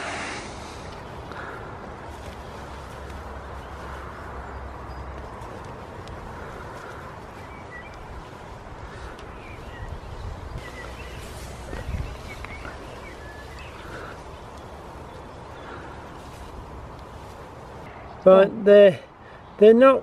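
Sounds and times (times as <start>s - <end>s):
small birds chirping: 0.0s - 20.0s
hands digging through compost: 10.5s - 17.9s.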